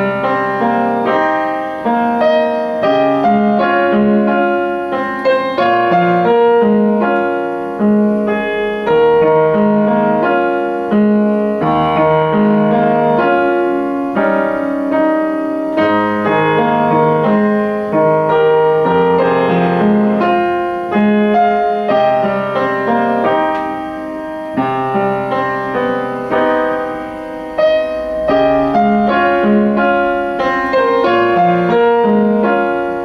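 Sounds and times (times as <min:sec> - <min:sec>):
upright piano playing: 0:00.0 - 0:33.0.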